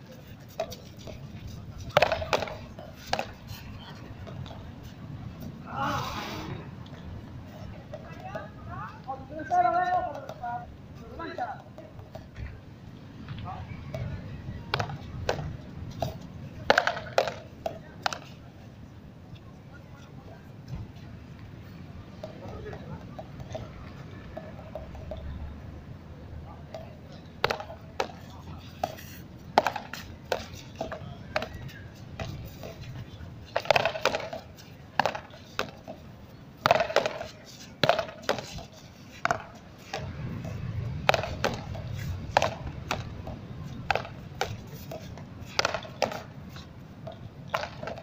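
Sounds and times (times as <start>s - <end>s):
ball knocking off rackets and wall: 36.6s - 44.7s, 45.5s - 46.2s.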